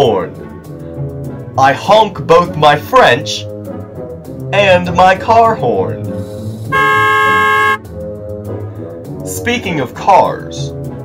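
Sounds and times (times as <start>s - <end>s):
soft background music: 0.0s - 11.0s
car horn honking: 6.7s - 7.9s.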